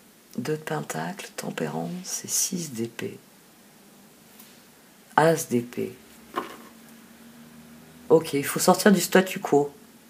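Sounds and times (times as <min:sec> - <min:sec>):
faint room hiss: 0:00.0 - 0:10.0
card deck rustling: 0:06.3 - 0:06.8.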